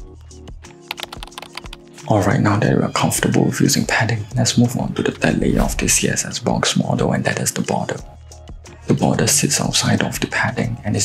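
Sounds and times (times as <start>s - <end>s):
background music with held tones: 0.0s - 5.3s, 6.2s - 11.0s
computer keyboard keystrokes: 0.8s - 1.8s.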